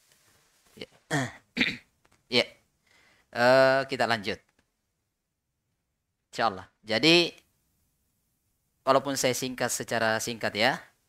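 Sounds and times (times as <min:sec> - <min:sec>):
man clearing his throat: 0:01.1 - 0:02.0.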